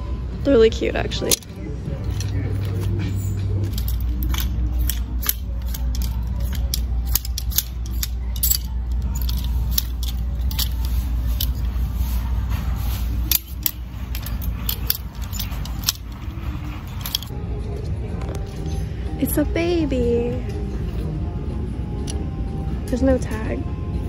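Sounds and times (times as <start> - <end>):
steady low hum: 0.0 - 24.0
hangers clicking on metal rail: 3.6 - 12.2, 12.8 - 17.3.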